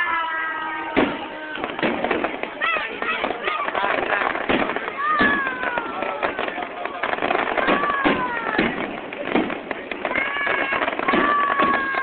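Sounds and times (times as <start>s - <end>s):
firework bang: 0.0s - 12.0s
firework crackling: 0.0s - 12.0s.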